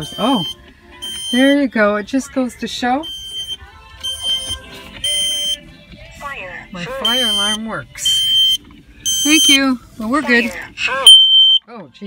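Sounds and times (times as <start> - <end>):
smoke alarm beeping: 0.0 - 1.8, 3.0 - 5.6, 7.0 - 9.7, 11.1 - 11.6.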